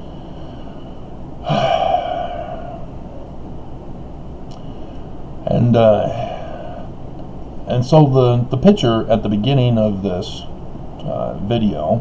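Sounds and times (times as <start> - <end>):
man sighing heavily: 1.4 - 3.0.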